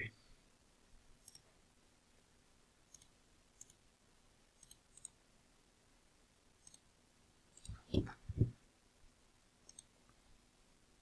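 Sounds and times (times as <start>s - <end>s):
computer mouse clicks: 1.2s - 1.5s, 2.9s - 3.8s, 4.6s - 5.2s, 6.6s - 6.9s, 7.5s - 8.1s, 9.6s - 9.9s.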